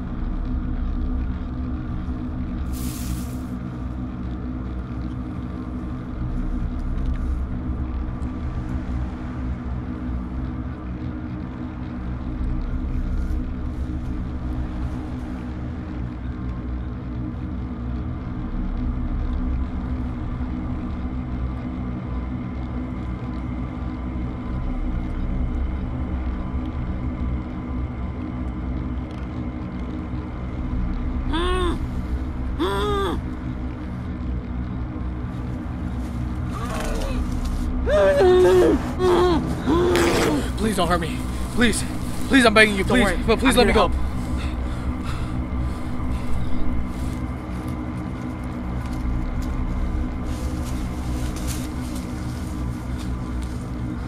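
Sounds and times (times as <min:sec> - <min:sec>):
low suspense drone: 0:00.0 - 0:54.0.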